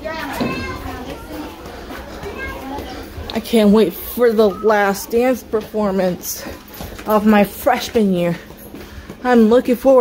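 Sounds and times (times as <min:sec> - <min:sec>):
young people chattering and calling: 0:00.0 - 0:10.0.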